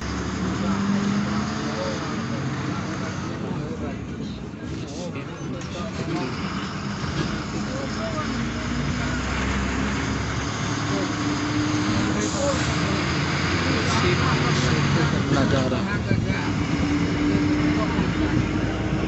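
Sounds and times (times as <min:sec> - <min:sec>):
bus engine and road noise: 0:00.0 - 0:19.0
indistinct voices: 0:00.0 - 0:19.0.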